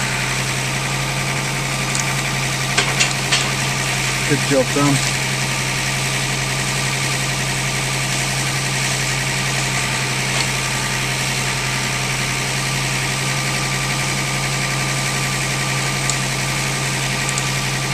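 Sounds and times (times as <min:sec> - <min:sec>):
engine running steadily: 0:00.0 - 0:17.9.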